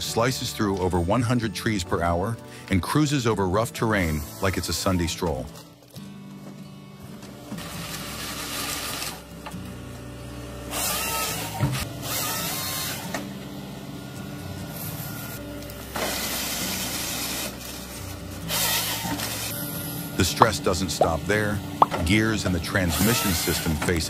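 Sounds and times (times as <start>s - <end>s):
harvester head cutting trees: 7.2s - 24.0s
excavator engine and hydraulics: 7.3s - 24.0s.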